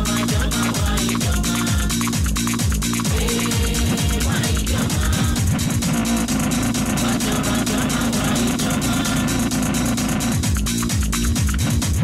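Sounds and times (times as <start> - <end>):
buzzing synth drone: 0.0 - 12.0
fast hi-hat ticks: 0.0 - 12.0.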